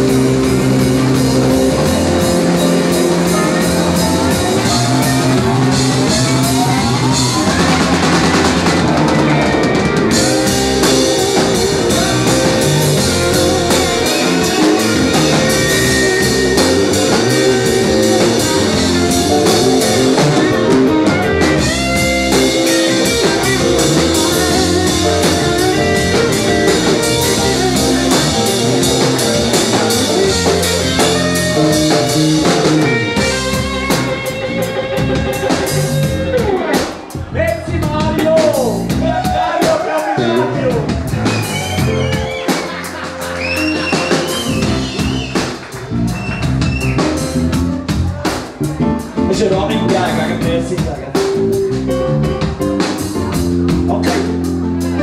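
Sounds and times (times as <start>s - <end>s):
electric guitar lead lines: 0.0s - 37.3s
rock band playing: 0.0s - 55.0s.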